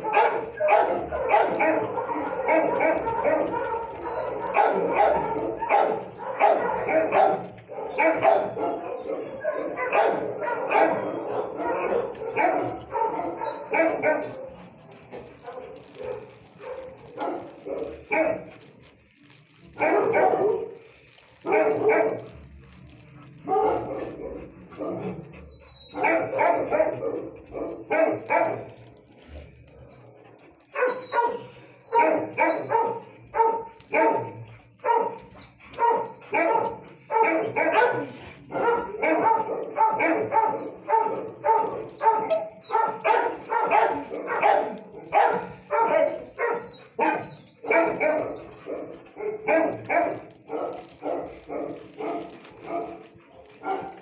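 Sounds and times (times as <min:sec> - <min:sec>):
dog barking: 0:00.0 - 0:19.0, 0:19.7 - 0:22.5, 0:23.4 - 0:25.2, 0:25.9 - 0:28.8, 0:30.7 - 0:54.0.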